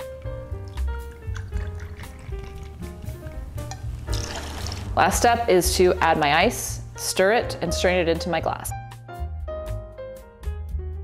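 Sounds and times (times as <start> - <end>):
liquid pouring into glass: 0.3 - 5.0.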